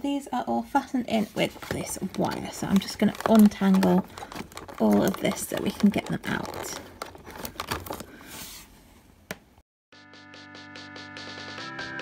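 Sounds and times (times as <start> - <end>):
plastic tray crinkling: 1.2 - 8.2
background music with ticking beat: 10.2 - 12.0.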